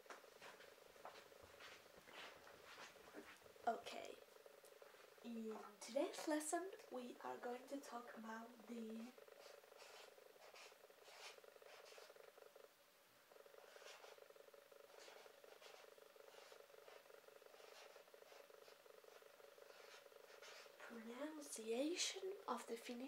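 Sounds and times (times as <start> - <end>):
faint steady buzz: 0.0 - 23.0
marker scratching on paper: 0.4 - 3.4, 8.9 - 12.5, 13.5 - 21.0.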